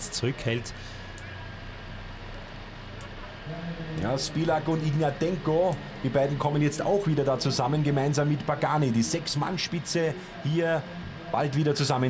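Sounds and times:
motorcycle engines droning: 0.0 - 12.0.

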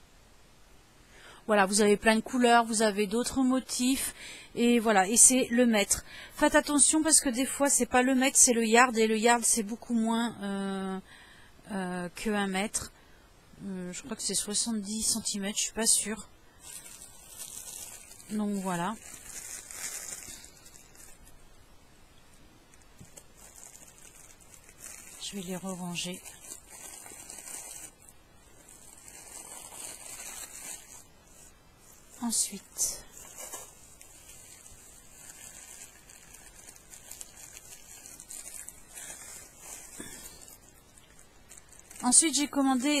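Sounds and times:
faint rustling: 16.5 - 43.0.

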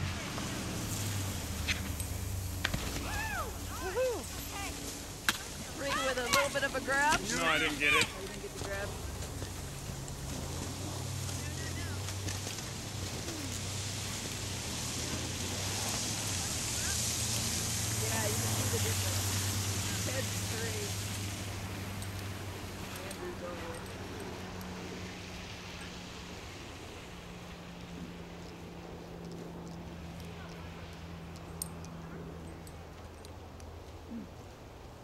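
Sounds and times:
car passing by: 0.0 - 32.0.

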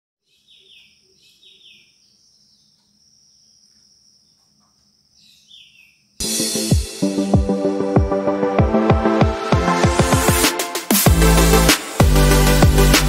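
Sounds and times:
bird chirps: 0.2 - 6.2.

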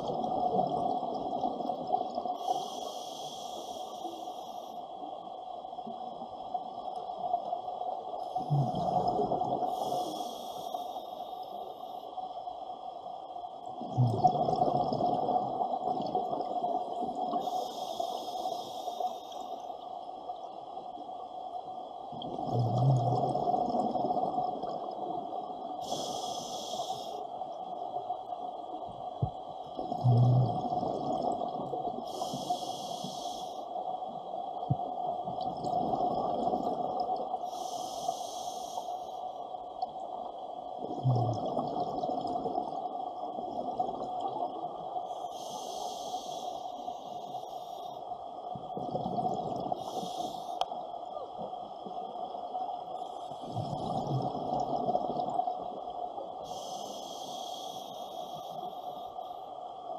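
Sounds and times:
underwater noise: 0.0 - 59.9
scuba regulator inhalation hiss: 2.4 - 4.8, 9.6 - 12.1, 17.4 - 19.7, 25.8 - 27.2, 32.1 - 33.7, 37.4 - 39.3, 45.1 - 48.0, 49.8 - 50.7, 56.4 - 59.4
bubbling of exhaled air: 8.3 - 10.3, 13.8 - 17.5, 22.2 - 24.9, 29.2 - 33.3, 40.8 - 42.8, 48.6 - 50.4, 53.3 - 55.6.

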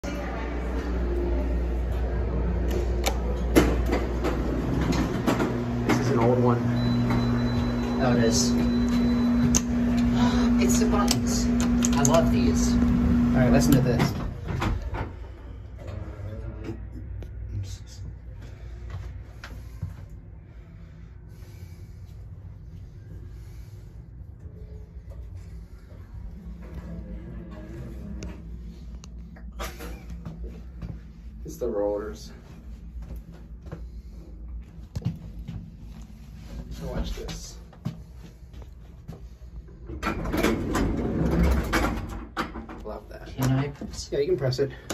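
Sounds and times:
steady low hum: 0.0 - 44.9
elevator door clicking and rattling: 39.9 - 43.6.

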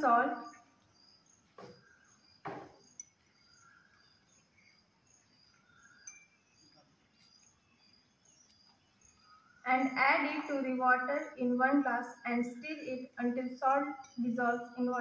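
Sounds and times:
insect chirping: 0.0 - 15.0
soft thuds: 1.5 - 2.9.

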